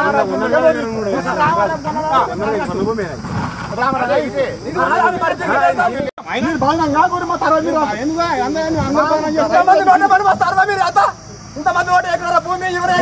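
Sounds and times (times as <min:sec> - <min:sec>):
men talking: 0:00.0 - 0:13.0.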